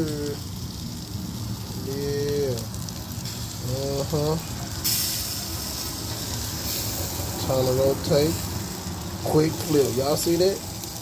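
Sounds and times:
sausages sizzling on grill: 0.0s - 11.0s.

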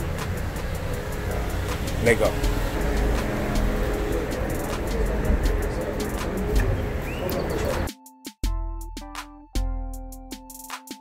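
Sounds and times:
heavy low rumble: 0.0s - 7.9s
background music with steady beat: 0.0s - 11.0s.

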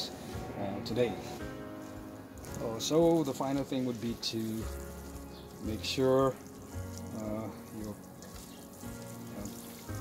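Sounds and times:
faint music: 0.0s - 10.0s
water sprinkling onto soil: 0.1s - 10.0s.

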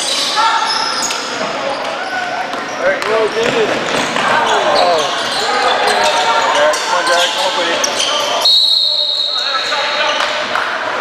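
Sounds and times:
referee whistle blast: 8.4s - 10.0s.

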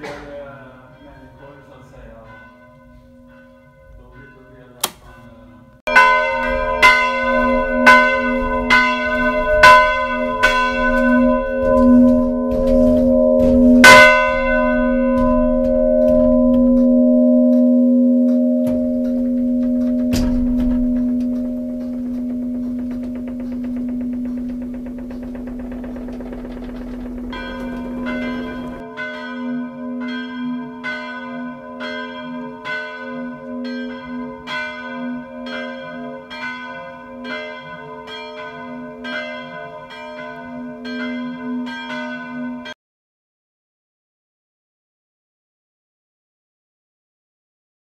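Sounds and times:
church bells ringing: 0.0s - 42.8s.

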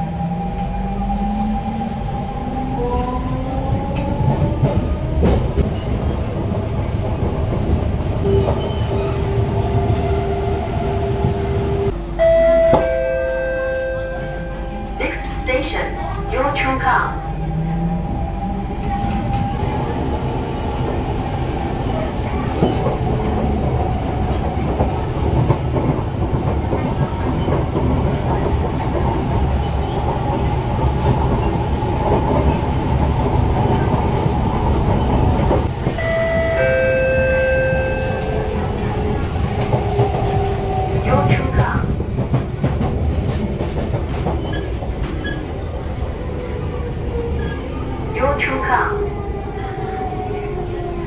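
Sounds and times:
train wheels rumbling on rail: 0.0s - 51.0s.

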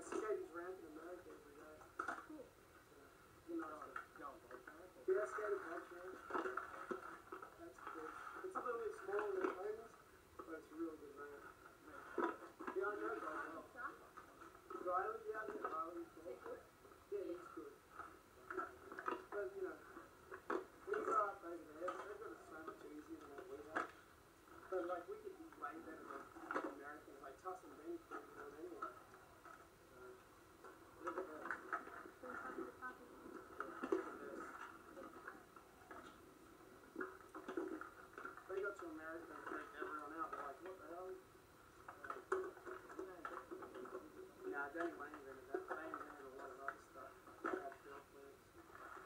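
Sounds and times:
muffled voices from television: 0.0s - 49.0s.

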